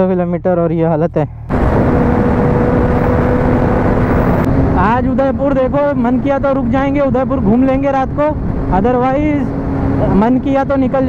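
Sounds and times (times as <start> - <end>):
man speaking: 0.0 - 1.4, 4.8 - 11.0
motorcycle engine hum: 0.0 - 11.0
wind rushing over microphone: 1.4 - 11.0.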